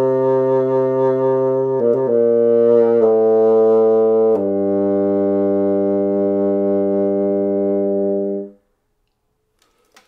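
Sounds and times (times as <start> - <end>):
bassoon long low note: 0.0 - 8.6.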